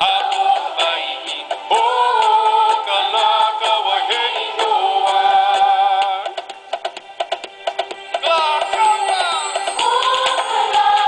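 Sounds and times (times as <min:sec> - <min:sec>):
voices singing: 0:00.0 - 0:06.4, 0:08.2 - 0:11.0
percussion hits: 0:00.0 - 0:11.0.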